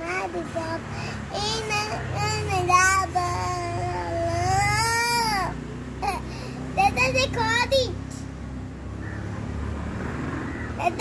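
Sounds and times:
girl singing: 0.0 - 8.2.

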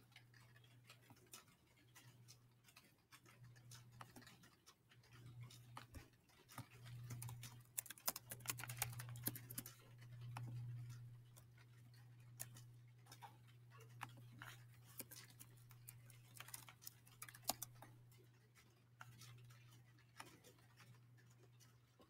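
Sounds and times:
keyboard keystrokes: 6.9 - 9.8.

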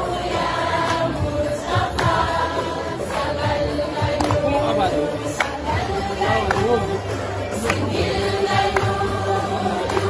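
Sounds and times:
women singing in chorus: 0.0 - 10.0
hand claps: 0.8 - 1.2, 1.9 - 2.2, 4.0 - 4.6, 5.2 - 5.8, 6.4 - 6.9, 7.6 - 10.0.

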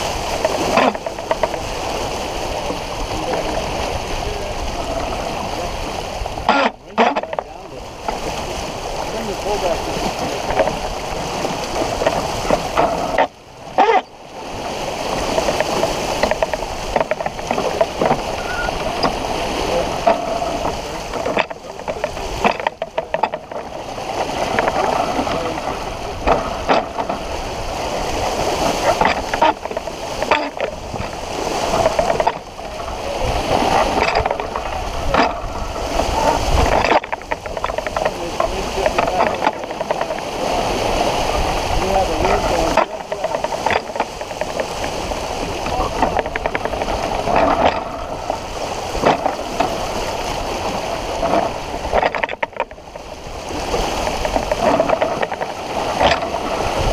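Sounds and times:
water splashing along boat hull: 0.0 - 56.9
wind gusts: 0.0 - 56.9.

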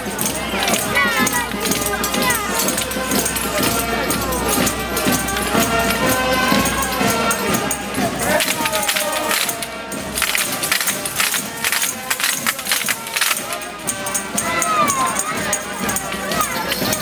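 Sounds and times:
clacking wooden percussion: 0.0 - 17.0
group singing folk song: 0.0 - 17.0
tambourines shaken and struck: 0.0 - 17.0.

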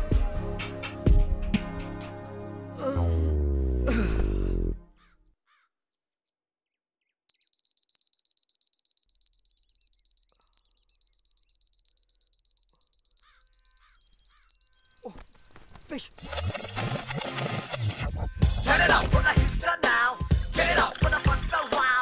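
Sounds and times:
music with a beat: 0.0 - 2.2, 17.7 - 22.0
alarm clock beeping: 7.3 - 18.8.

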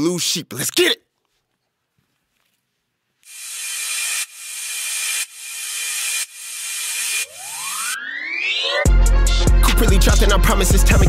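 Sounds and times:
pitched riser sweeping upward: 3.3 - 9.4.

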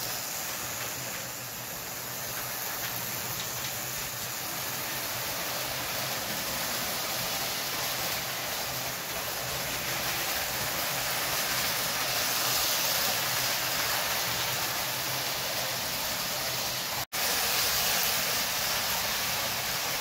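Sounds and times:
toy train motor and wheels whirring: 0.0 - 20.0.

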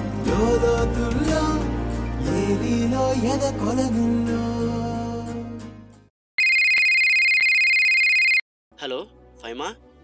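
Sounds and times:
telephone ringing: 6.4 - 8.4.

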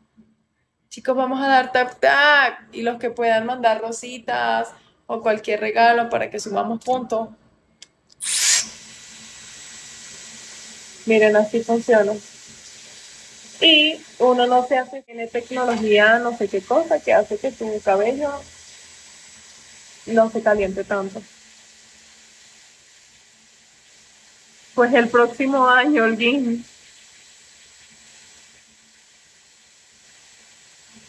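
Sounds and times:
hair dryer blowing air: 8.2 - 9.0.

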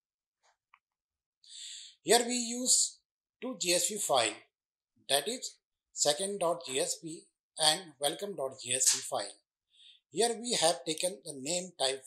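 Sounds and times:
short breath in: 1.5 - 2.0, 9.7 - 10.0
person speaking: 2.1 - 4.4, 5.1 - 9.3, 10.2 - 12.0.

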